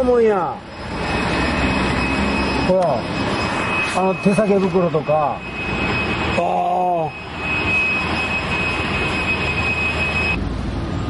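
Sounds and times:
high-pitched whine: 0.0s - 11.0s.

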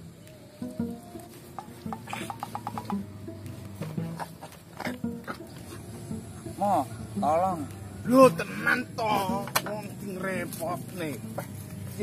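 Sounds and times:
background music: 0.0s - 12.0s
scattered clicks and knocks: 1.6s - 3.1s
rapid run of clicks: 1.6s - 3.6s.

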